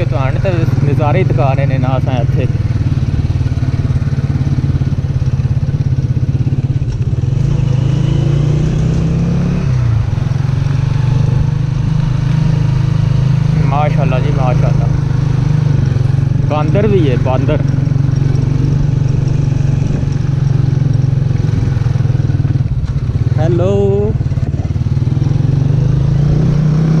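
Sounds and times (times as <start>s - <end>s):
motorcycle engine running: 0.0s - 27.0s.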